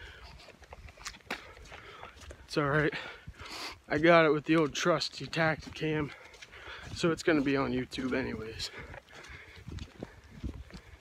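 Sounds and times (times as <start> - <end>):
footsteps on wet ground: 0.0 - 11.0.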